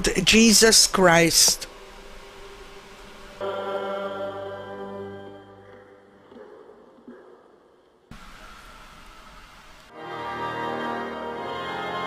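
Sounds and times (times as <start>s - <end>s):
church organ chord: 3.1s - 6.3s, 8.2s - 12.0s.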